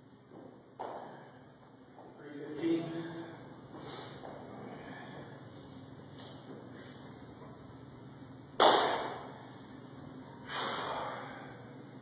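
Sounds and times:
sharp forceful exhales: 0:10.4 - 0:11.6.

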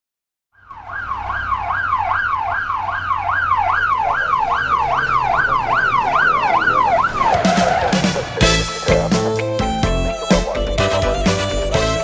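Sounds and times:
police siren fast yelp: 0:00.6 - 0:08.6.

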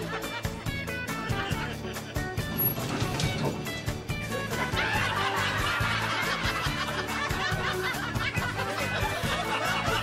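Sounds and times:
laugh track: 0:00.0 - 0:10.0
light background music: 0:00.0 - 0:10.0.

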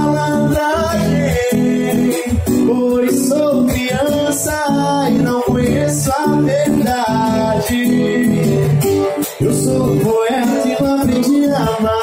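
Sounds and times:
acoustic guitar strumming: 0:00.0 - 0:12.0
man singing into a microphone: 0:00.0 - 0:12.0.

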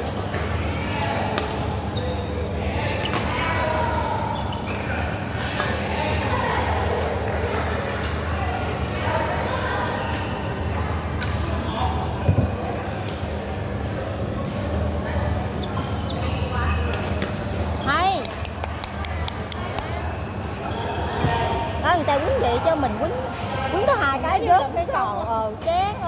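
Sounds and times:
shoes squeaking on court: 0:04.2 - 0:05.0, 0:15.5 - 0:18.3.

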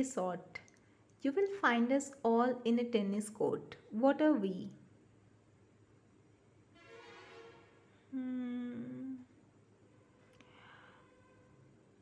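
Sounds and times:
person humming: 0:08.1 - 0:09.4.

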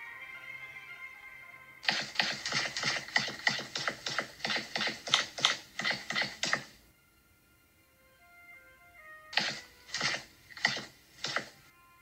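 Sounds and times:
cartoon rapid clicking: 0:01.8 - 0:06.8, 0:09.3 - 0:11.6.

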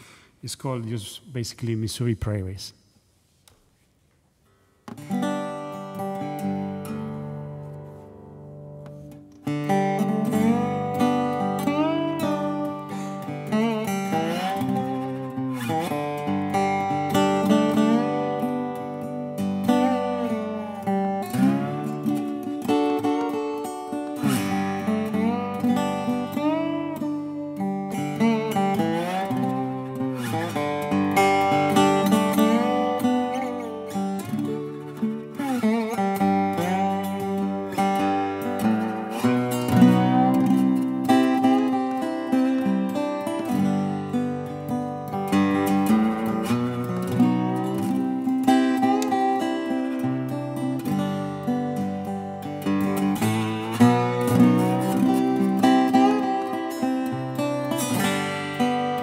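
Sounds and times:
lap steel guitar sliding tune: 0:05.0 - 0:59.0.

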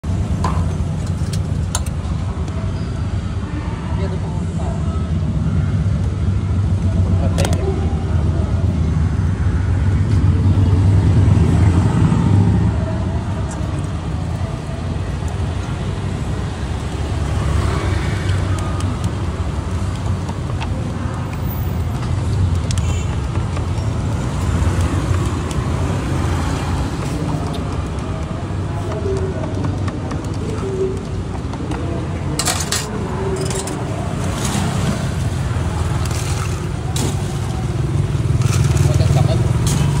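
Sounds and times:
engine humming nearby: 0:00.0 - 0:40.0
road traffic noise: 0:00.0 - 0:40.0
voices in background: 0:25.3 - 0:40.0.

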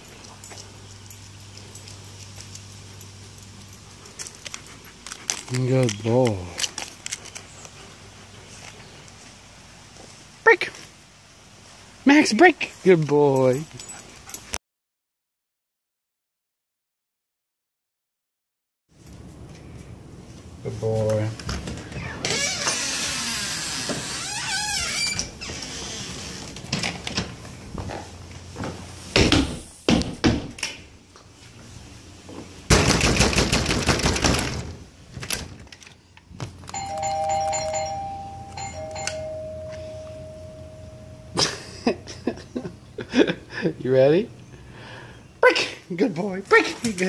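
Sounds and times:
rustling: 0:00.0 - 0:12.0
door opening with knocks: 0:29.1 - 0:30.8, 0:32.7 - 0:35.8
steady high tone: 0:36.7 - 0:42.0.

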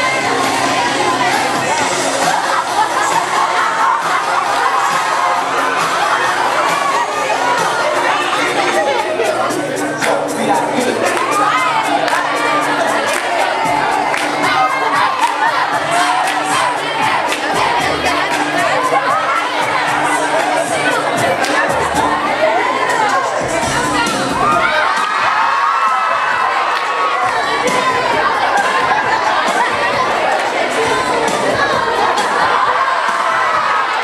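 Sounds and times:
young audience screaming and cheering: 0:00.0 - 0:34.0.

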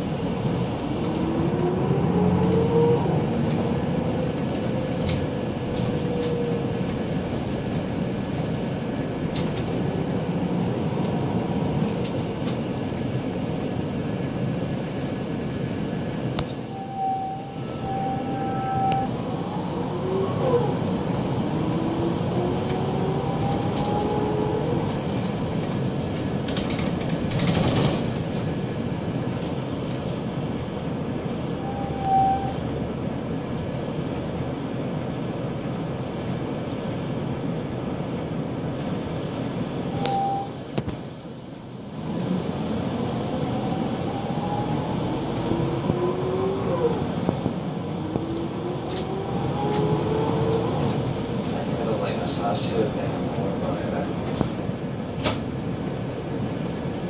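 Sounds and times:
rising drivetrain whine: 0:00.0 - 0:36.6, 0:38.5 - 0:57.0
bus engine running: 0:00.0 - 0:57.0
short beeps: 0:40.0 - 0:40.6.

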